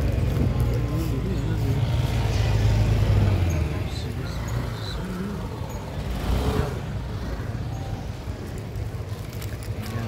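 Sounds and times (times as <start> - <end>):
car engines rumbling: 0.0 - 10.0
vehicle passing close by: 6.0 - 7.4.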